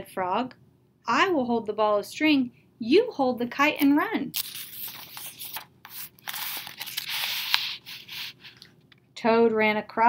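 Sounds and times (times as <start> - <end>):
book page turning: 3.8 - 8.8.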